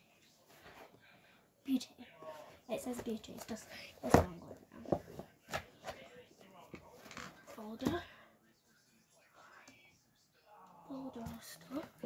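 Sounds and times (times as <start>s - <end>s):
faint whispering: 7.9s - 12.0s.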